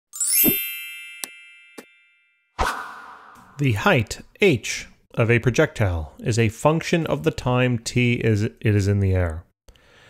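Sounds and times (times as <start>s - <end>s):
bright chime sweeping up: 0.1s - 3.6s.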